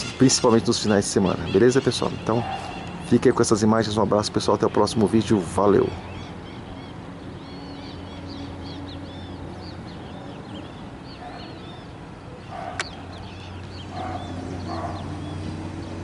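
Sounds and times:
birds chirping: 0.0 - 16.0
lower bird calls: 0.0 - 16.0
sharp click: 12.8 - 13.0.

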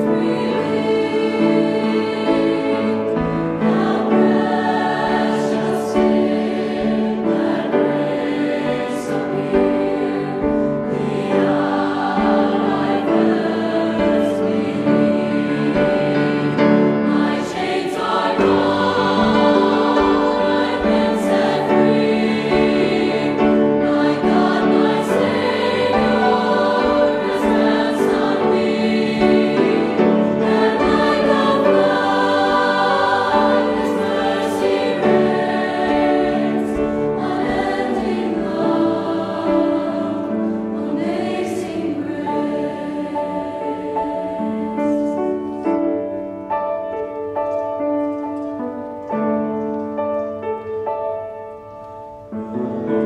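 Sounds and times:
mixed choir singing: 0.0 - 46.4, 52.4 - 53.0.

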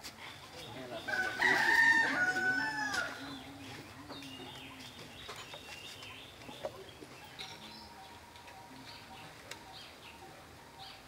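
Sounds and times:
rooster crowing: 1.1 - 3.4.

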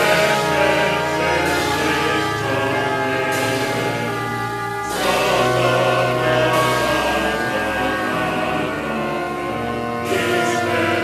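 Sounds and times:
orchestra holding sustained chord: 0.0 - 11.0.

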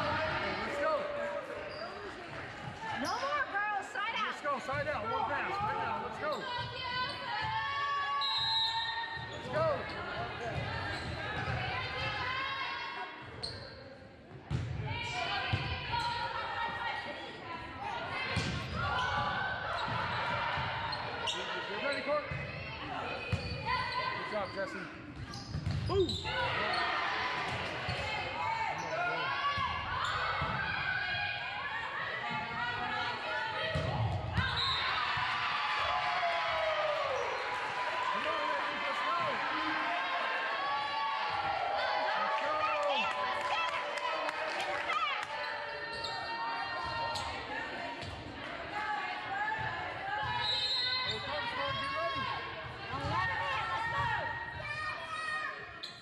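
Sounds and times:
players and spectators shouting: 0.0 - 1.8, 25.8 - 55.8.

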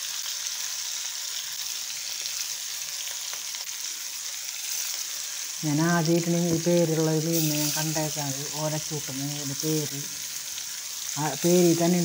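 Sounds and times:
fish sizzling in hot oil: 0.0 - 12.0.

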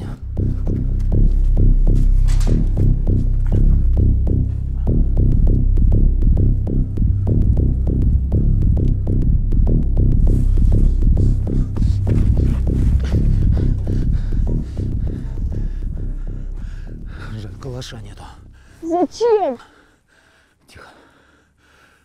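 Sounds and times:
pulsing bass throb: 0.0 - 19.4.

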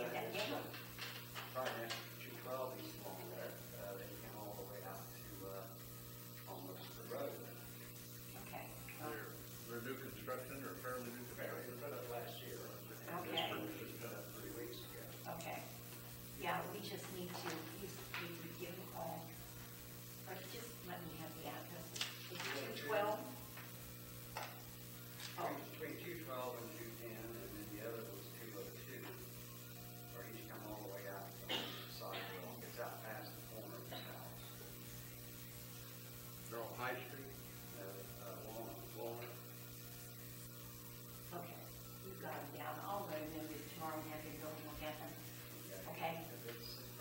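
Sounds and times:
low electrical hum: 0.0 - 47.0.

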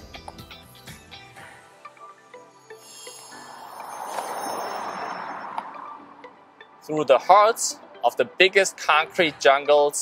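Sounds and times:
rushing noise: 2.8 - 6.3.

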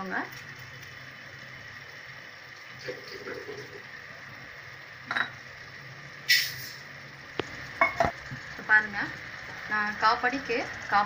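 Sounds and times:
food sizzling in a metal pot: 0.0 - 11.0
spoon clinking and scraping pot: 5.1 - 5.4, 7.8 - 8.2.

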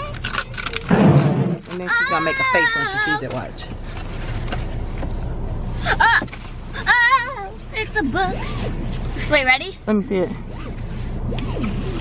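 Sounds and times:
paper envelope tearing: 0.2 - 1.8.

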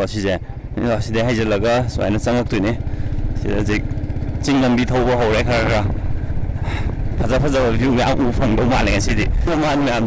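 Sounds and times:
motorbike engine rumble: 0.0 - 10.0
wind: 0.0 - 10.0.

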